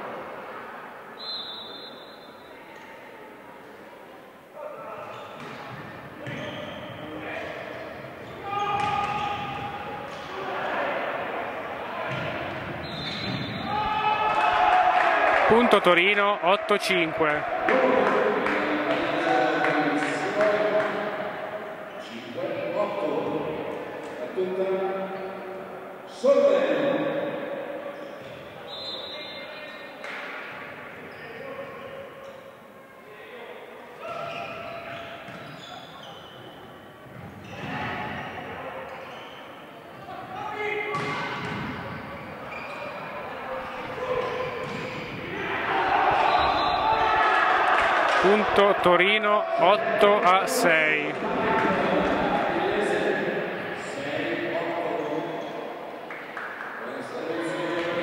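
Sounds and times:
volleyball hits echoing in hall: 4.6 - 31.8, 39.9 - 58.0
players shouting: 8.2 - 19.8, 43.3 - 53.3.

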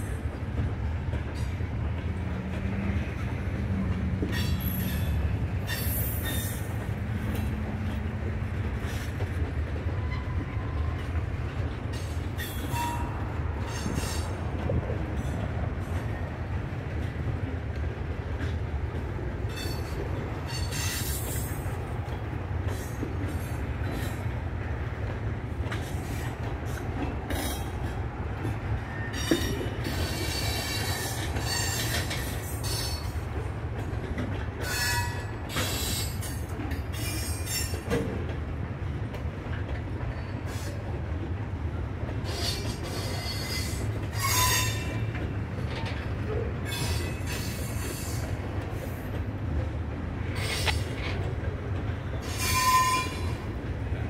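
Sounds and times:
freight train wheels rumbling: 0.0 - 54.0
high-pitched wheel squeals: 42.3 - 45.0, 52.2 - 53.4.

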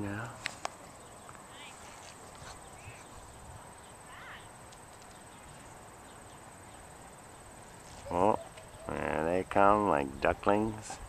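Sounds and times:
faint background hiss: 0.0 - 11.0
thin high tone: 7.9 - 10.7.

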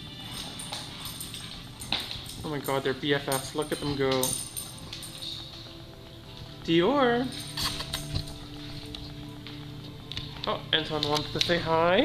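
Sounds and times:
dog claws clicking on tile floor: 0.0 - 5.8, 7.3 - 11.7
background music: 0.0 - 12.0.

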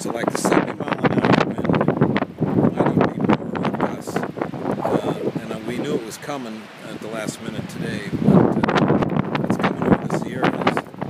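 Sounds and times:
gusty wind buffeting microphone: 1.0 - 6.2.

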